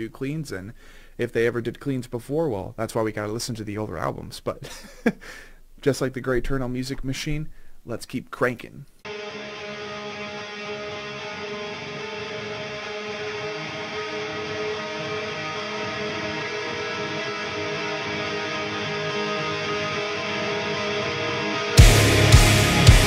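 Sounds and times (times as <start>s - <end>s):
ringing electric guitar chord: 9.1s - 23.0s.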